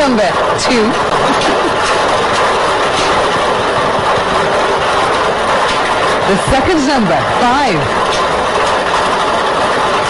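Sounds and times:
lottery balls clattering in machine: 0.0 - 10.0.

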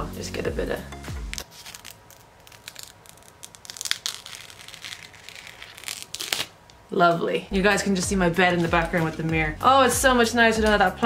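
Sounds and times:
plastic film crinkling: 1.1 - 6.8, 7.9 - 9.4.

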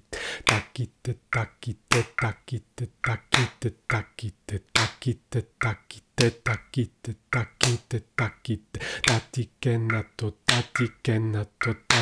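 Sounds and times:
hand clap: 0.5 - 0.7, 1.9 - 2.2, 3.3 - 3.6, 4.8 - 5.0, 7.6 - 7.8, 9.1 - 9.3, 10.5 - 10.8
man speaking rhythmic syllables: 0.5 - 12.0.

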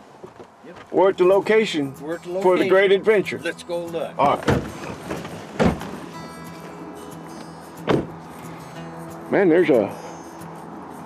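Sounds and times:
quiet background music: 0.9 - 11.0
truck doors thumping shut: 4.2 - 6.1, 7.8 - 8.2.

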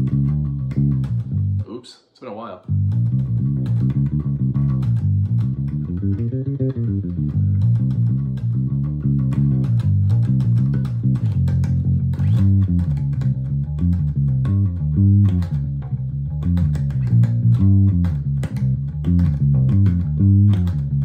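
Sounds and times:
electric bass guitar riff: 0.0 - 1.8, 2.6 - 21.0.

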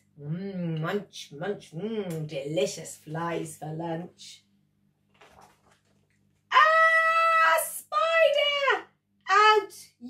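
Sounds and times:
woman screaming: 6.5 - 8.8.

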